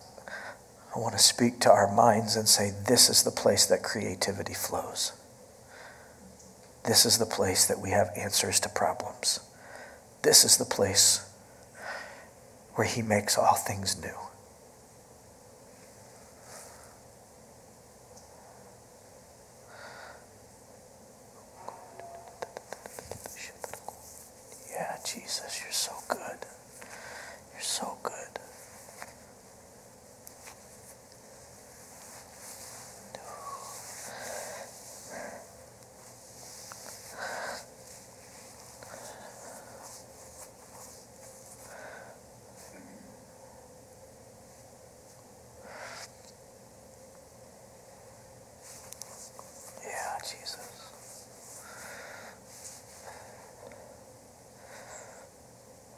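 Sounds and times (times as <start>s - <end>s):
faint steady hum: 0.0s - 55.9s
man whispering: 0.2s - 5.2s, 6.8s - 9.6s, 10.2s - 11.4s, 12.7s - 14.4s, 21.5s - 29.2s, 32.1s - 35.7s, 38.7s - 40.8s, 49.0s - 53.8s.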